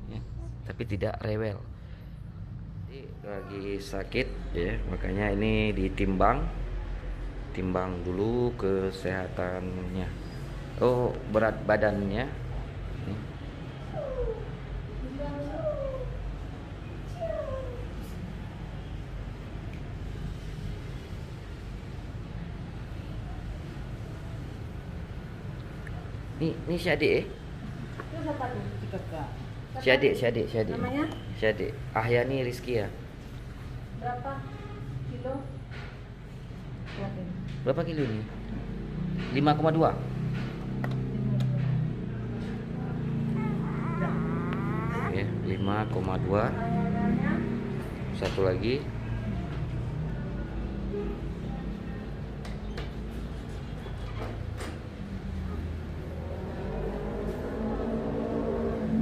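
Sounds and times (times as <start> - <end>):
short cry: 43.3 - 45.4.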